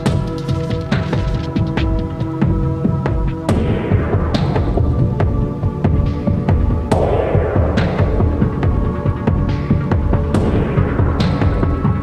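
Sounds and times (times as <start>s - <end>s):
electronic music with pulsing bass: 0.0s - 12.0s.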